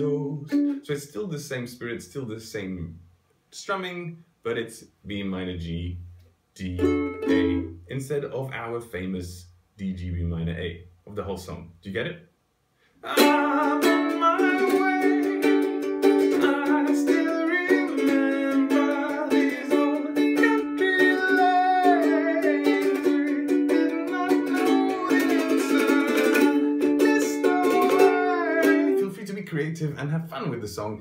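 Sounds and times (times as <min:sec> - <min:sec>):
ukulele strumming: 0:00.0 - 0:00.8, 0:06.6 - 0:07.8, 0:13.0 - 0:29.2
man singing: 0:00.0 - 0:01.0, 0:13.0 - 0:29.5.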